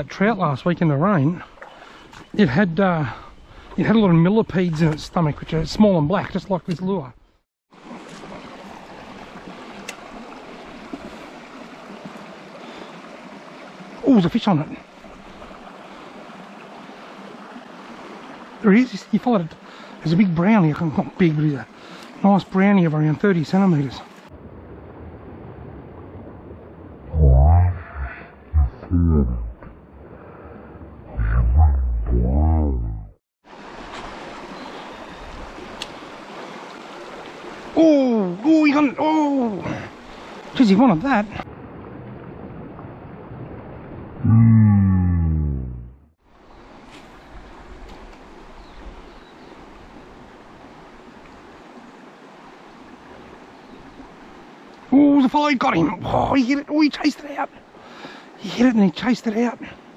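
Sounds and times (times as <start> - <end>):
creek water running: 0.0 - 45.6, 46.2 - 59.9
long falling groan: 44.2 - 46.0.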